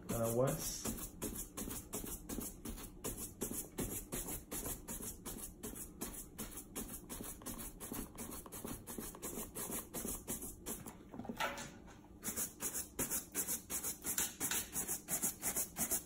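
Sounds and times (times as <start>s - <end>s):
shoe brush scrubbing leather: 0.1s - 10.8s, 14.7s - 16.0s.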